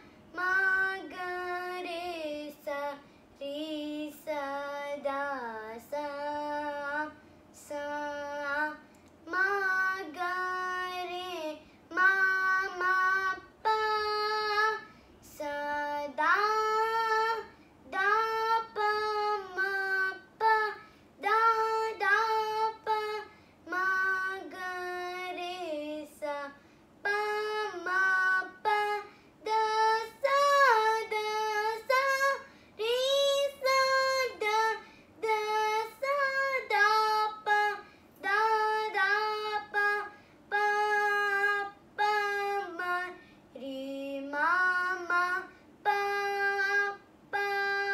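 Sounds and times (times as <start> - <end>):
girl singing unaccompanied: 0.0 - 47.9.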